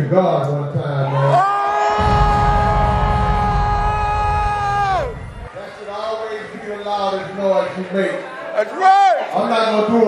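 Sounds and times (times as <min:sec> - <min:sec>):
low rumble: 0:02.0 - 0:05.6.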